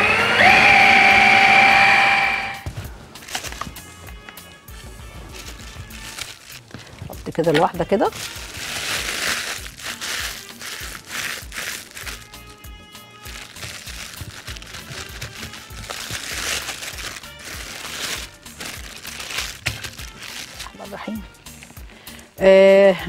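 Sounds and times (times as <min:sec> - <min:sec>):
plastic bag crinkling: 0:03.2 - 0:03.9, 0:04.8 - 0:21.3.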